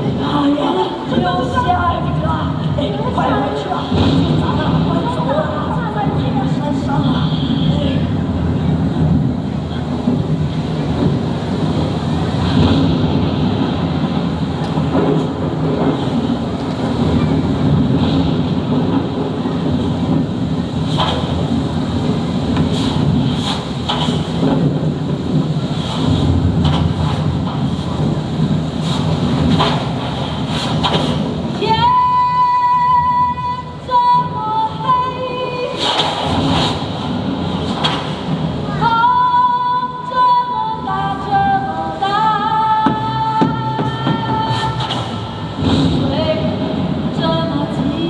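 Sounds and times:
low rumble: 0:00.0 - 0:32.2
woman singing: 0:31.6 - 0:36.0, 0:38.8 - 0:48.0.

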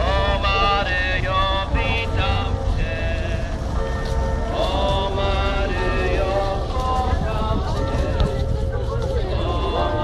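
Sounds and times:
crowd singing long notes: 0:00.0 - 0:03.8, 0:04.4 - 0:08.5, 0:09.2 - 0:10.0
steady low rumble: 0:00.0 - 0:10.0.

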